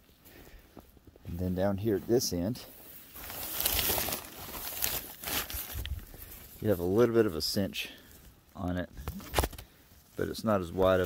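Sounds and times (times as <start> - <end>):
fabric rustling and crinkling: 2.0 - 8.4.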